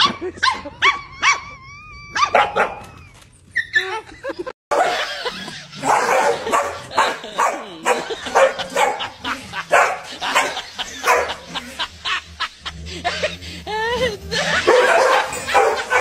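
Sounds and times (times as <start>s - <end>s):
dogs barking rapidly: 0.0s - 1.4s, 2.2s - 3.0s, 4.7s - 13.4s, 14.3s - 16.0s.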